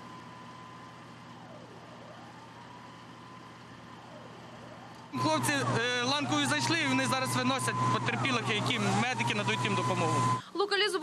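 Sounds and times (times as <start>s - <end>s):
emergency vehicle siren: 0.0s - 10.4s
outdoor background noise: 0.0s - 11.0s.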